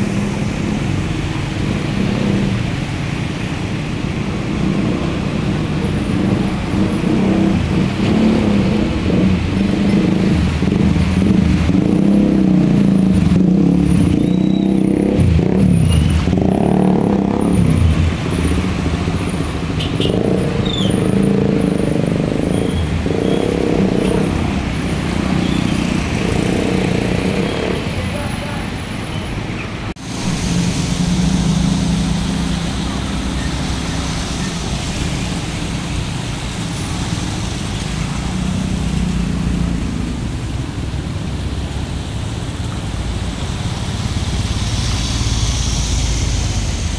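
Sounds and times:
water sloshing and splashing: 28.8s - 45.2s.

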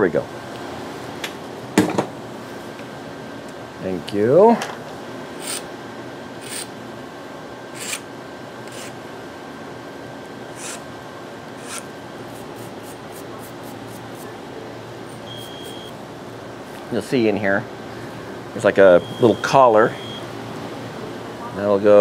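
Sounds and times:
equipment rack hum: 0.0s - 22.0s
metal tool scraping cable: 7.8s - 8.0s, 8.7s - 9.0s, 10.6s - 10.8s, 11.6s - 11.9s.

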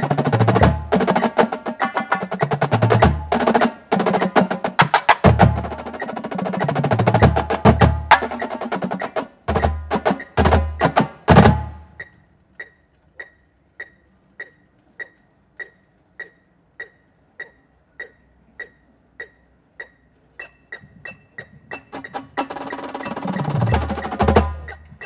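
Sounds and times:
marching snare and bass drums: 0.0s - 12.0s, 21.4s - 25.0s
metronome clicking: 5.2s - 11.1s, 11.8s - 25.0s.

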